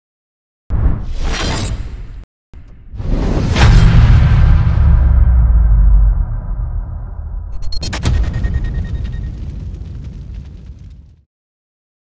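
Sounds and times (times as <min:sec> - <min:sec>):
deep bass boom: 0:03.4 - 0:11.2.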